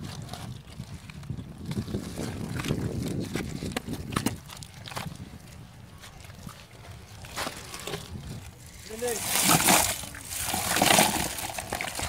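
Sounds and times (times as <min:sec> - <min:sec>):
oyster shells clattering: 0:06.9 - 0:12.0.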